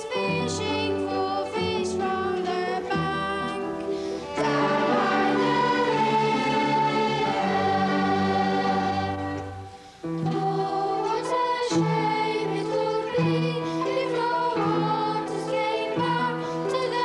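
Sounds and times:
children's choir singing: 0.0 - 17.0
string orchestra accompanying: 0.0 - 17.0.

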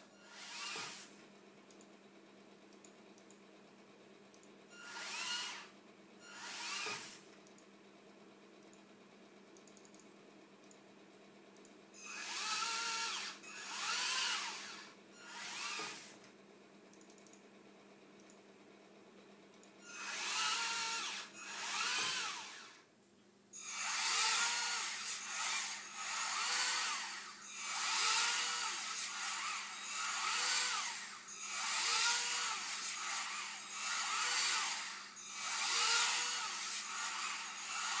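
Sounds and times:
gear motors whining: 0.0 - 1.1, 4.7 - 7.2, 12.0 - 16.2, 19.8 - 22.9, 23.6 - 38.0.

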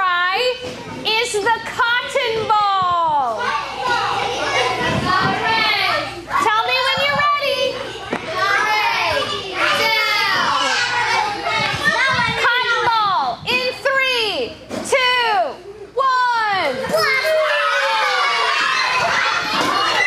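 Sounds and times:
children shouting and chattering: 0.4 - 20.0.

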